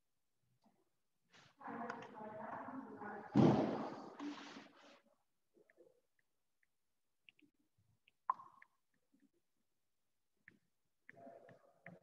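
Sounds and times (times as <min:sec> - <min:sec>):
loud thud: 0:03.3 - 0:04.1.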